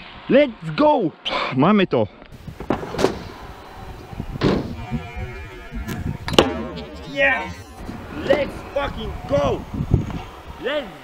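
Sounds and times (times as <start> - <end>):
rolling wheels rumble: 2.4 - 11.0.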